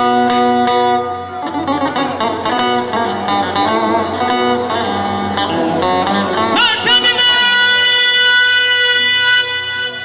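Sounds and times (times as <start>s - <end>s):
person singing folk music: 0.0s - 10.0s.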